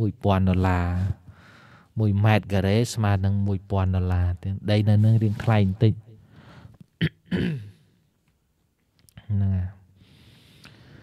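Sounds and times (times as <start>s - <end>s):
man clearing his throat: 7.0s - 7.9s.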